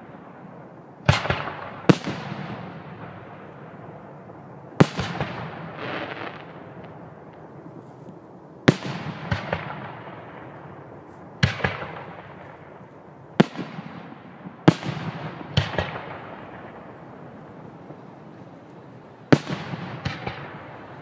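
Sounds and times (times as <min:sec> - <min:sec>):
fireworks bangs: 0:00.0 - 0:21.0.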